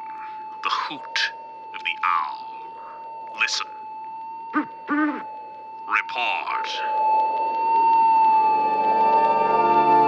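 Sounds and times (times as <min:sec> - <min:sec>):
organ music: 0:00.0 - 0:10.0.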